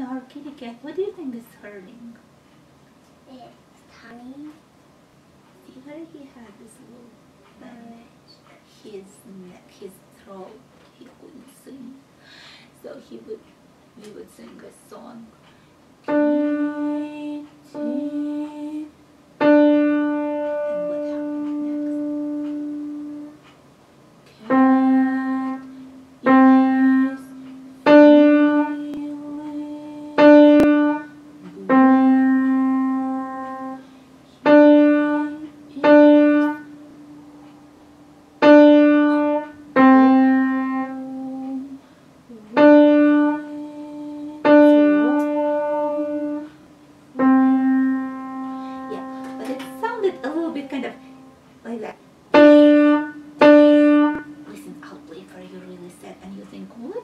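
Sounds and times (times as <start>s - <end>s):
slow two-note piano tune: 16.1s - 18.8s, 19.4s - 23.4s, 24.4s - 46.6s, 47.2s - 51.5s, 52.3s - 54.6s.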